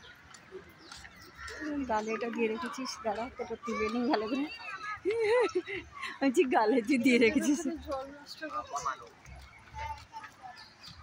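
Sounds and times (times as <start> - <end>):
people and children talking: 0.0 - 11.0.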